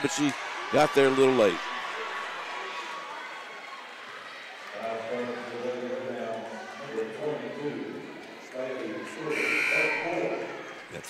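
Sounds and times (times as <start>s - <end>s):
murmur of voices: 0.0s - 11.0s
scoreboard buzzer: 9.3s - 10.2s.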